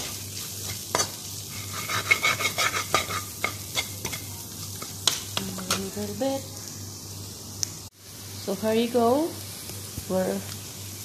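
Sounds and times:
metal spoon scraping a pan: 0:00.0 - 0:06.0
onions sizzling in a pan: 0:00.0 - 0:11.0.

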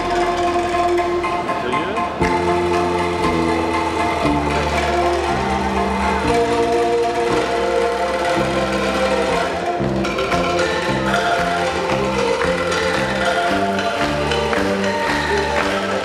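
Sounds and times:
angklung ensemble playing: 0:00.0 - 0:16.0
bass line: 0:00.0 - 0:16.0.

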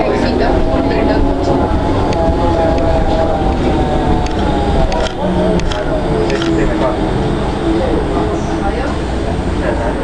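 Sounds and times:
trolleybus cabin rumble: 0:00.0 - 0:10.0.

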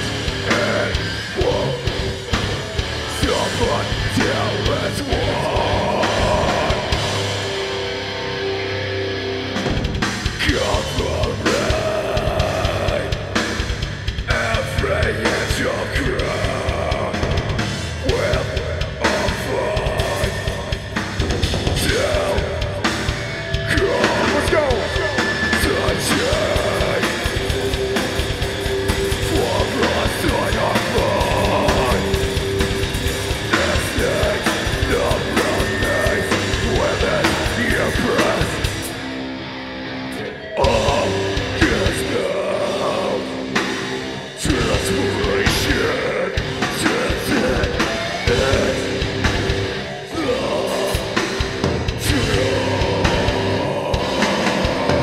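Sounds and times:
drum kit: 0:00.0 - 0:39.2, 0:40.1 - 0:55.0
electric guitars: 0:00.0 - 0:55.0
heavy metal band playing loudly: 0:00.0 - 0:55.0
vocalist yelling: 0:23.6 - 0:27.2.

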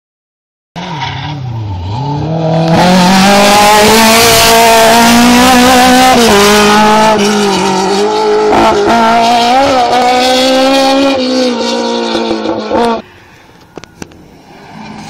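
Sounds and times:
rally car engine at full throttle: 0:00.8 - 0:15.0.

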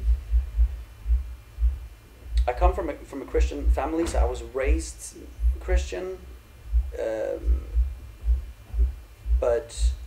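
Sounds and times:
faint steady hum: 0:00.0 - 0:10.0
low muffled thumping: 0:00.0 - 0:10.0.

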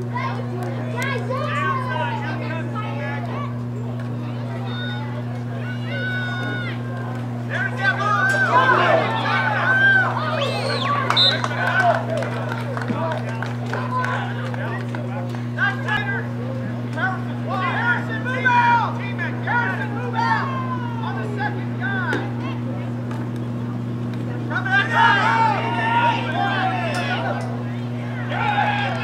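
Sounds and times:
people talking and calling out: 0:00.0 - 0:29.0
steady low hum: 0:00.0 - 0:29.0.

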